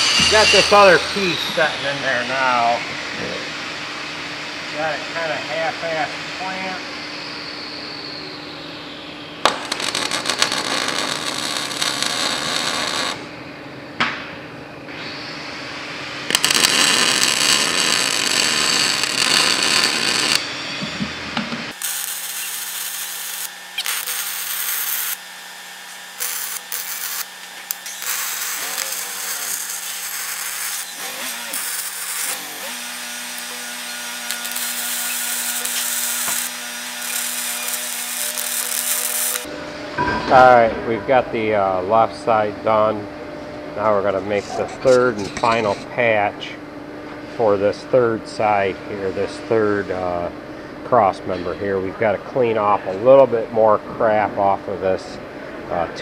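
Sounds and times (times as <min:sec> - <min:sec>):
arc welding crackling: 0:09.4 - 0:13.3, 0:16.2 - 0:20.5, 0:21.7 - 0:39.5.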